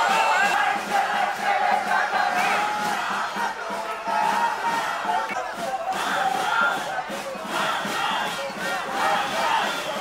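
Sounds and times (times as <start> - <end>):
crowd shouting and chanting: 0.0 - 10.0.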